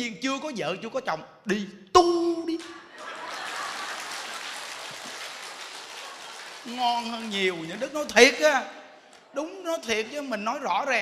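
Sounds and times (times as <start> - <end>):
audience applauding: 2.6 - 8.1.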